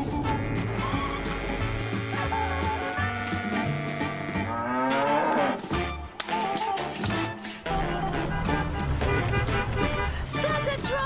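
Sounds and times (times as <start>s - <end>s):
background music: 0.0s - 11.0s
cow mooing: 0.4s - 5.8s.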